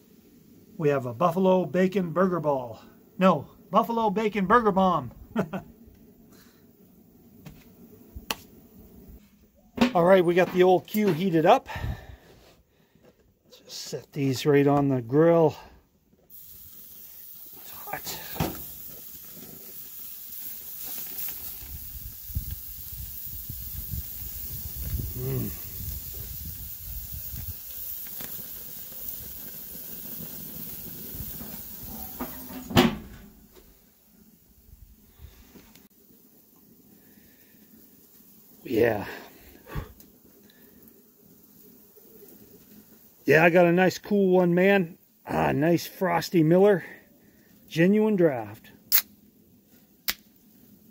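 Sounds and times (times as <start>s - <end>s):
outdoor background: 0.0s - 50.9s
patties sizzling on a grill: 0.0s - 50.9s
man breathing: 11.7s - 13.2s, 39.2s - 40.9s.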